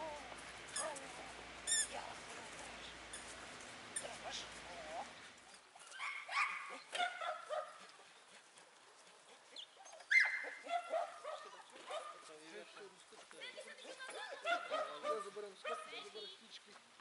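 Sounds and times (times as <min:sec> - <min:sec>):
small dog yelping: 0:00.7 - 0:01.1, 0:05.8 - 0:07.8, 0:09.6 - 0:12.2.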